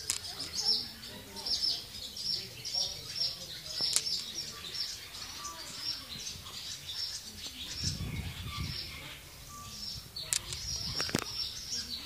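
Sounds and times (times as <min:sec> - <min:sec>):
swallows twittering: 0:00.0 - 0:12.0.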